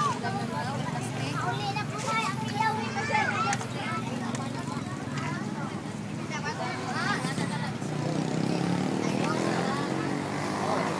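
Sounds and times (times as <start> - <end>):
children and adults talking: 0.0 - 10.9.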